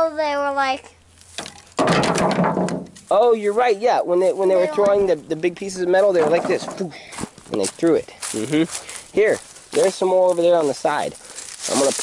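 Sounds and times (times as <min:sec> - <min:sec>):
person speaking: 0:03.1 - 0:12.0
dry branches crackling and snapping: 0:08.2 - 0:12.0.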